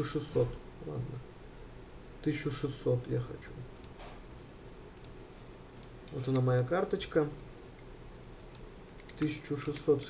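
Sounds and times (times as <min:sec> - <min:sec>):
room hiss: 0:00.0 - 0:10.0
computer mouse clicks: 0:05.0 - 0:05.2, 0:05.8 - 0:06.5, 0:07.8 - 0:10.0.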